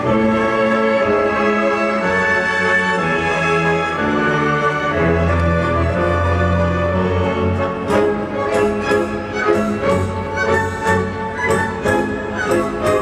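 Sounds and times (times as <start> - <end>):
orchestra playing dance music: 0.0 - 13.0.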